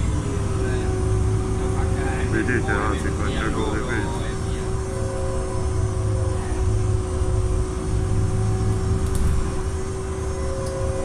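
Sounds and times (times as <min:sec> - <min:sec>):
bus rumbling: 0:00.0 - 0:11.0
constant hum: 0:00.0 - 0:11.0.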